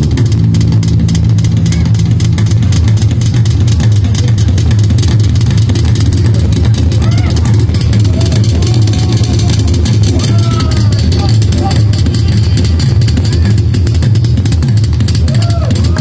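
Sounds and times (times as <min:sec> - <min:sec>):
crowd voices: 0:00.0 - 0:16.0.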